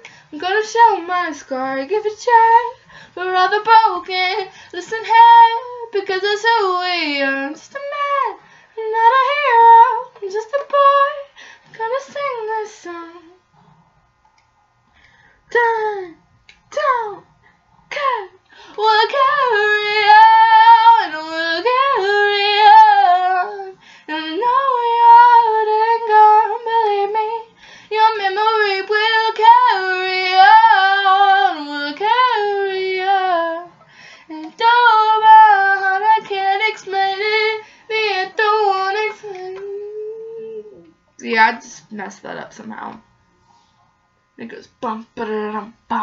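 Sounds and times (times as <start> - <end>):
woman singing unaccompanied: 0.0 - 13.4, 15.5 - 17.3, 17.9 - 43.1, 44.4 - 46.0.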